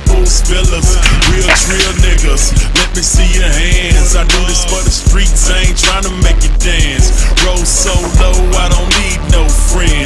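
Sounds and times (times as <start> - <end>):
hip-hop beat: 0.0 - 10.0.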